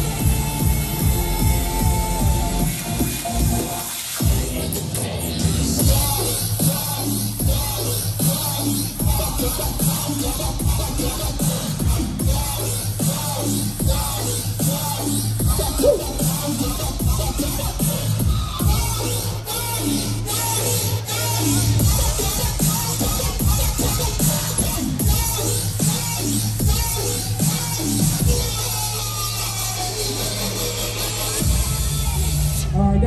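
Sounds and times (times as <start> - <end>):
deep bass line: 0.0 - 4.6, 5.8 - 20.4.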